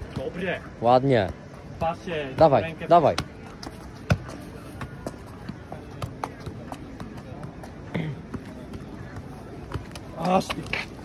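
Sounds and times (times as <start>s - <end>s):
football thudding against feet: 1.2s - 7.5s.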